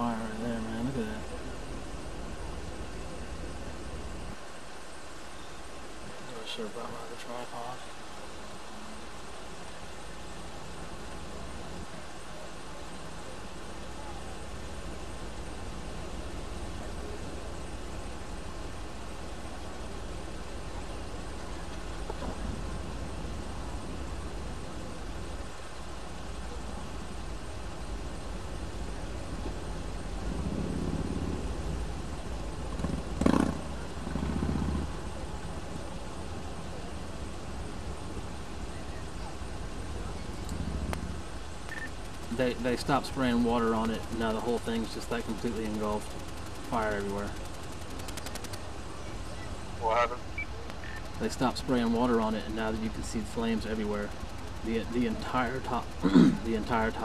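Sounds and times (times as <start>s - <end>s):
low outdoor rumble: 0.0s - 57.0s.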